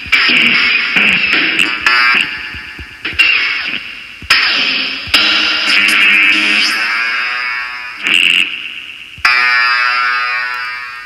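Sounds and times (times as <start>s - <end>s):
synthesizer notes: 0.0s - 11.0s.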